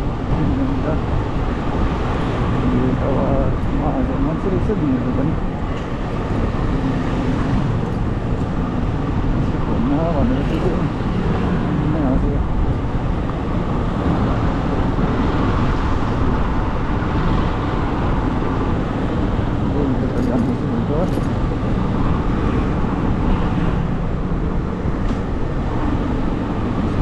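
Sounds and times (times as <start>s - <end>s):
wind noise on microphone: 0.0s - 27.0s.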